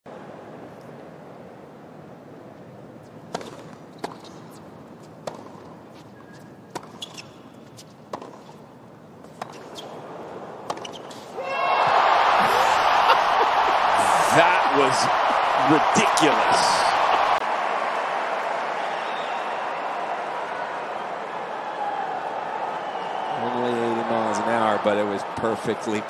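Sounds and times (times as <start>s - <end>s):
ball bouncing on hard court: 5.2s - 5.7s, 6.7s - 7.4s
racket striking tennis ball: 5.2s - 5.8s, 6.7s - 7.2s, 8.1s - 8.6s, 10.6s - 11.0s
crowd cheering and applause: 11.4s - 26.0s.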